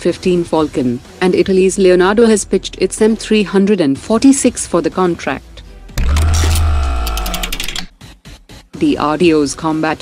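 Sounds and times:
rapid mechanical ticking: 6.0 - 7.9.

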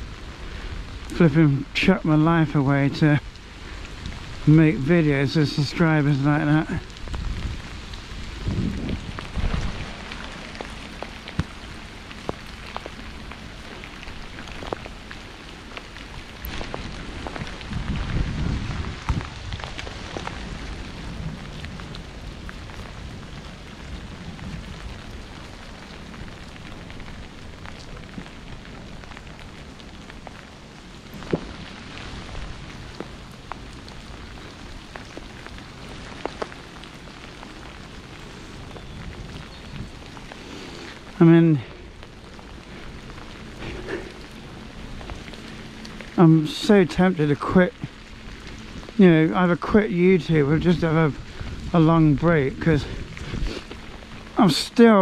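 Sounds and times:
bicycle tyres on wet path: 0.0 - 55.0
rain hiss: 0.0 - 55.0
low rumble: 2.6 - 46.4.

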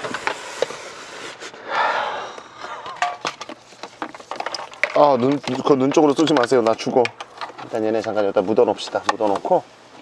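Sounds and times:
wires rustling: 2.6 - 10.0.

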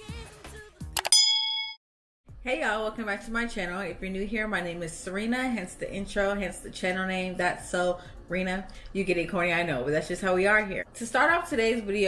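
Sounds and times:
bright bell ding: 1.0 - 1.8.

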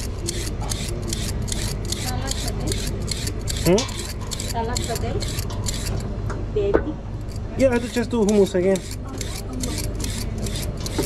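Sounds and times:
peeler scraping carrot: 0.0 - 6.0, 7.2 - 11.0.

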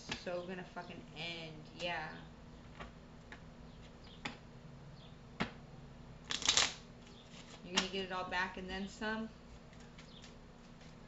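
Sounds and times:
cards clicking on table: 6.3 - 6.8
cards rustling: 6.3 - 7.9, 9.5 - 11.0.

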